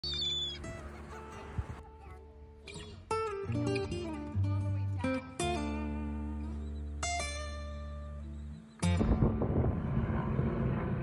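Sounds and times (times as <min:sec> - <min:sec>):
gull crying: 0:00.0 - 0:00.6
soft music: 0:00.6 - 0:09.1.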